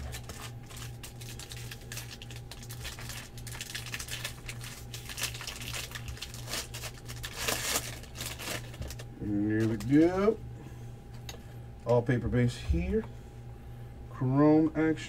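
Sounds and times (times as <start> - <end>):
foil wrapper tearing and crinkling: 0.0 - 10.0.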